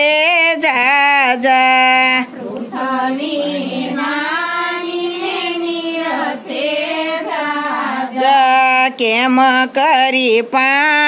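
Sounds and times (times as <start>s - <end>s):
women singing devotional song: 0.0s - 11.0s.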